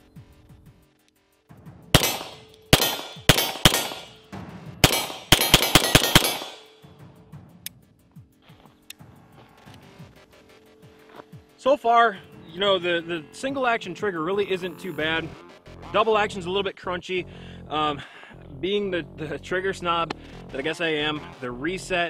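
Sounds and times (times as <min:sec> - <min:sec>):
background music: 0:00.0 - 0:22.0
pistol shots: 0:02.0 - 0:06.8
steel targets ringing: 0:02.0 - 0:06.9.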